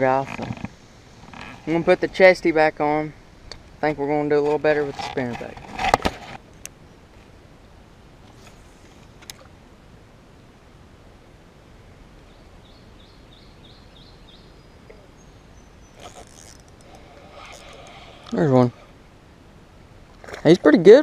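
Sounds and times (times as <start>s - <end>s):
fishing rod and reel handling: 0.2s - 1.8s, 15.9s - 19.0s
bird chirping: 12.2s - 19.0s.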